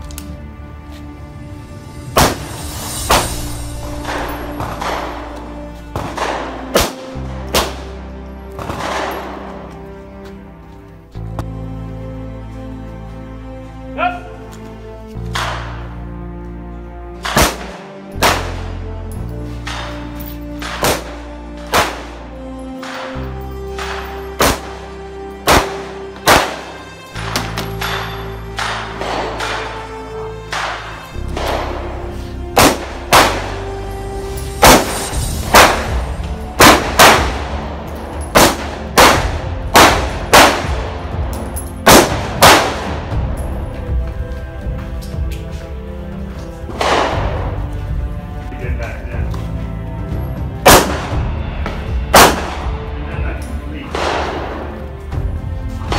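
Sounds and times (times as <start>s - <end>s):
background music with low bass: 0.0s - 55.9s
gunshots hitting steel targets: 3.1s - 7.9s, 8.6s - 9.6s, 17.2s - 18.8s, 19.5s - 22.2s, 22.8s - 24.8s, 25.5s - 31.9s, 32.6s - 33.6s, 34.6s - 43.0s, 50.6s - 51.1s, 52.1s - 52.7s, 53.9s - 54.8s.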